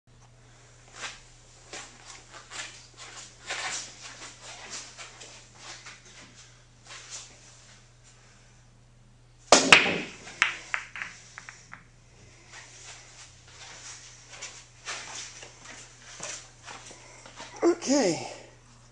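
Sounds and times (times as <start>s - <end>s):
cue ball cracking into racked balls: 9.5s - 11.9s
pool balls clattering: 9.5s - 11.9s
balls knocking cushions: 9.6s - 11.9s.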